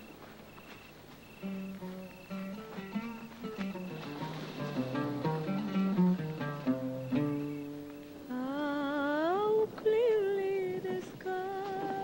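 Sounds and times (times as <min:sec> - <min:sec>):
person humming a slow melody: 0:08.3 - 0:12.0.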